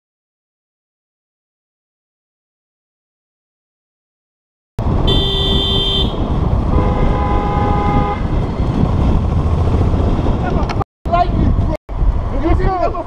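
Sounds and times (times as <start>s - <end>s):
wind rumble: 4.8s - 13.0s
vehicle horn blasts: 5.0s - 8.3s.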